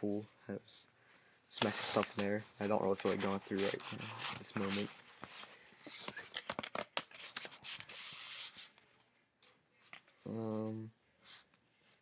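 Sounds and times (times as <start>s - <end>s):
paper sliding rustle: 1.6s - 6.3s, 7.1s - 8.7s
paper crackles and taps: 6.0s - 7.6s.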